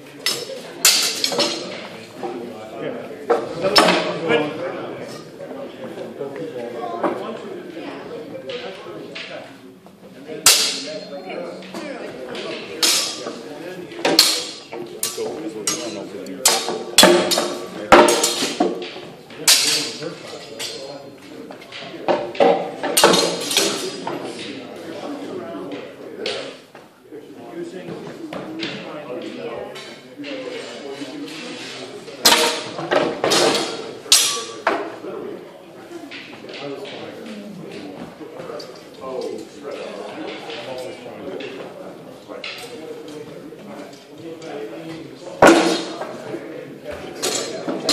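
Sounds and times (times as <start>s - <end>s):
swords clacking on shields: 0.2s - 1.9s, 3.3s - 4.2s, 10.4s - 20.9s, 21.6s - 24.6s, 31.3s - 34.9s
training sword striking: 10.5s - 11.0s.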